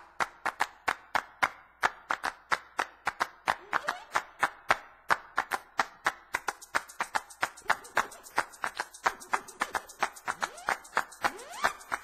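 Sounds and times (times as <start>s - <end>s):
hand claps: 0.0s - 12.0s.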